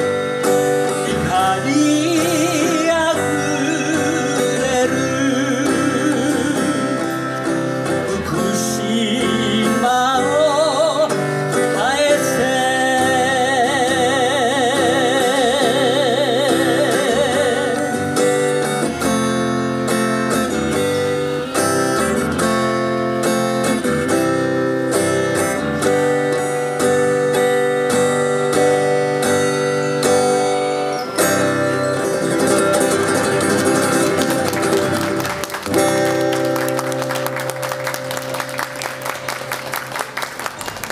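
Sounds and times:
acoustic guitar strummed: 0:00.0 - 0:40.9
audience applause: 0:33.3 - 0:40.9.

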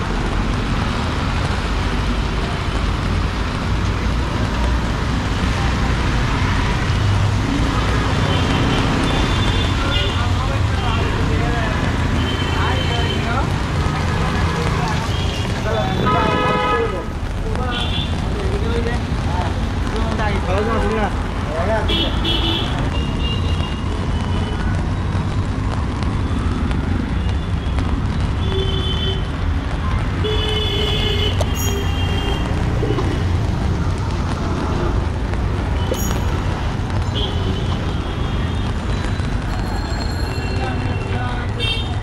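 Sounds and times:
traffic on wet road: 0:00.0 - 0:42.0
vehicle horn toots: 0:16.0 - 0:17.0.

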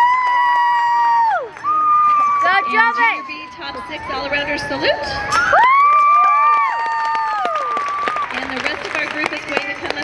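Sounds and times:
high voices long shouts: 0:00.0 - 0:08.2
crowd cheering: 0:00.0 - 0:10.0.

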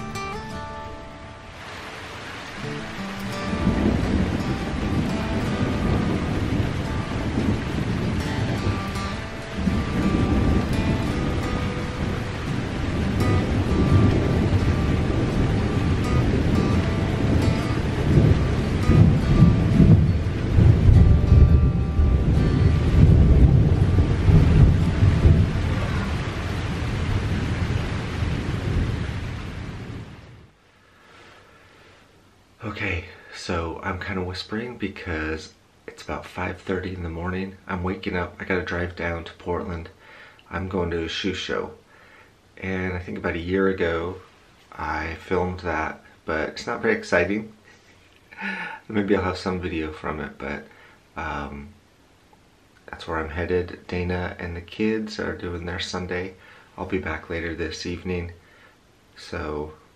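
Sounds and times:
rain: 0:00.0 - 0:59.9
thunder rumbling: 0:01.3 - 0:30.6.

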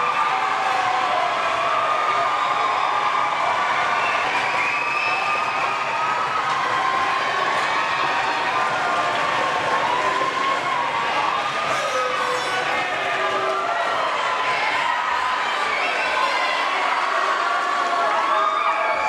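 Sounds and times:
arena crowd cheering and shouting: 0:00.0 - 0:19.0.

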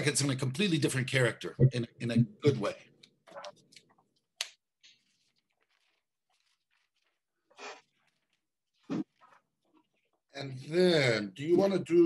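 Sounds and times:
man speaking: 0:00.0 - 0:02.9.

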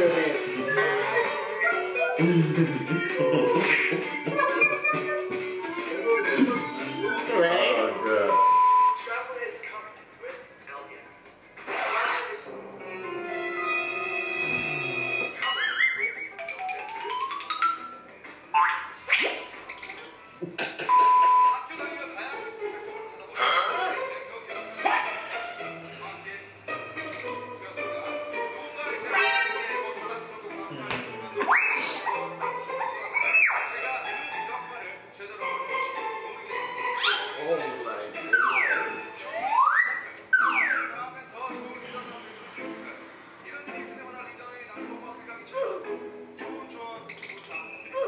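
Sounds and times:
background music: 0:00.0 - 0:48.0
slide whistle gliding tone: 0:38.3 - 0:40.9.

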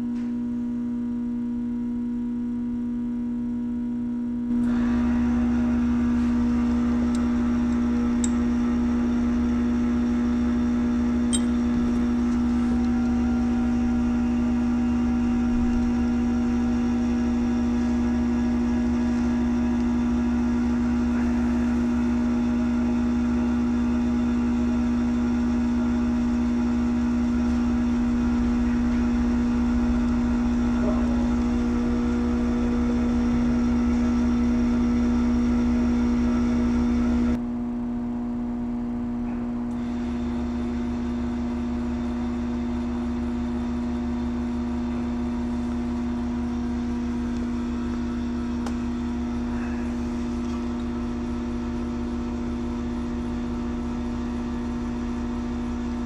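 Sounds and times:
pump motor electric hum: 0:00.0 - 0:56.0.

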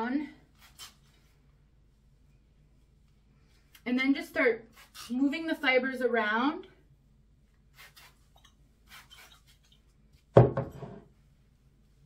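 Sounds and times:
glass bottle knocking on hard surface: 0:10.4 - 0:11.0.

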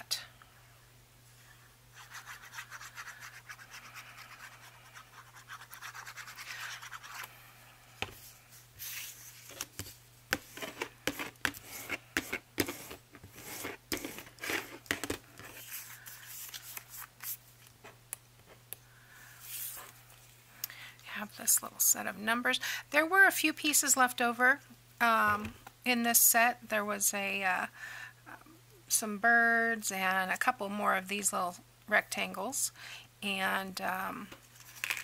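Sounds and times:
bone folder scraping paper: 0:08.8 - 0:17.4.

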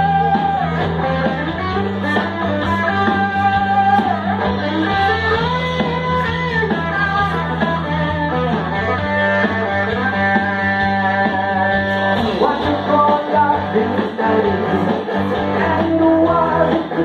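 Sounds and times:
electric guitar playing: 0:00.0 - 0:17.0
low bass part: 0:00.0 - 0:17.0
man singing into microphone: 0:11.0 - 0:17.0.

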